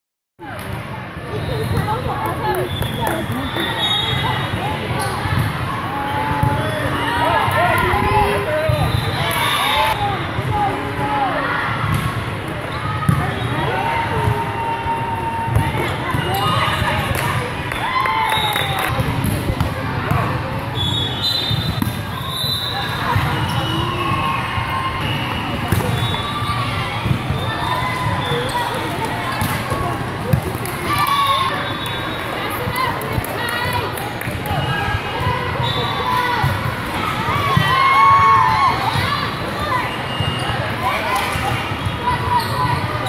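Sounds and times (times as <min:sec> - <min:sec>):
people calling out and chattering: 0:00.4 - 0:43.0.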